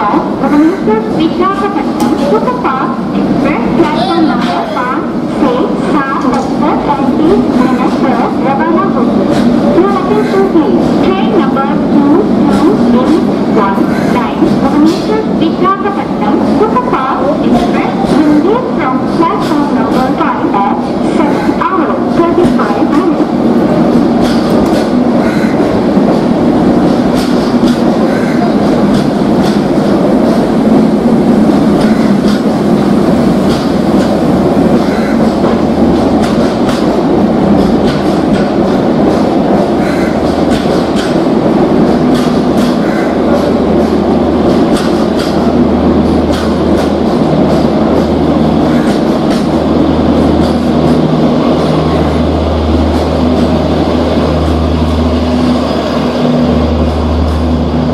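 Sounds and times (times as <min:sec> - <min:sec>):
train coaches rumbling: 0:00.0 - 0:57.9
wheels clacking over rail joints: 0:23.9 - 0:57.9.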